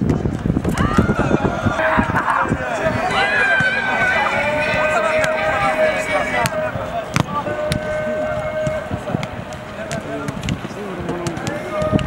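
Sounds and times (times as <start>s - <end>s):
players calling and shouting: 0.6s - 12.0s.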